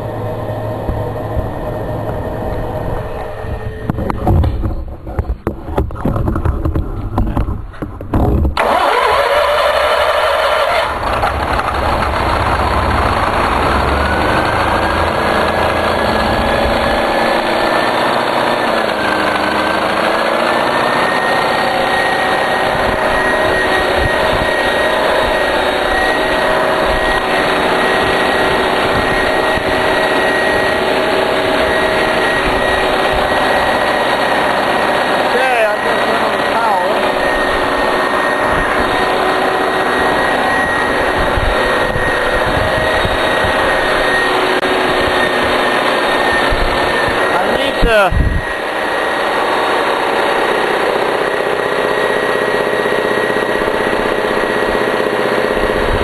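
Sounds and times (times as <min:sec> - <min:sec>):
generator engine running: 0:00.0 - 0:56.0
engine cranking: 0:04.0 - 0:21.9.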